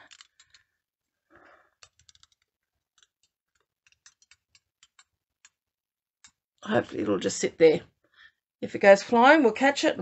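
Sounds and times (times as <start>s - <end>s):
small clicks and taps: 1.8s - 6.6s.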